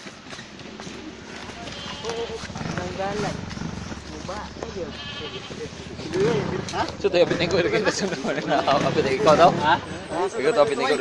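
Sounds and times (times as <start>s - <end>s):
men calling out and talking: 0.8s - 11.0s.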